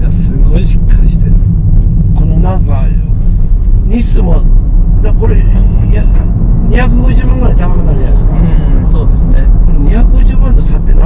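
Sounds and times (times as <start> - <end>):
man talking: 0.0 - 1.4, 2.2 - 3.2, 3.8 - 11.0
car engine drone in cabin: 0.0 - 11.0.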